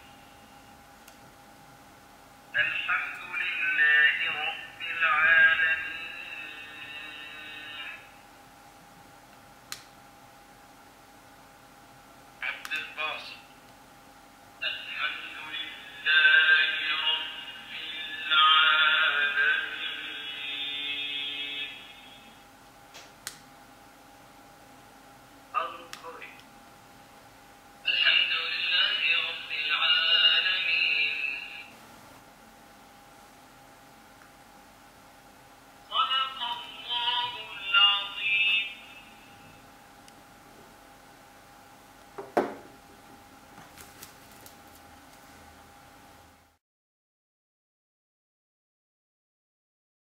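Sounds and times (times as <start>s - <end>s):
chanting voice through small speaker: 2.5s - 8.2s, 12.4s - 13.5s, 14.6s - 22.4s, 25.6s - 26.4s, 27.8s - 31.8s, 35.8s - 39.6s.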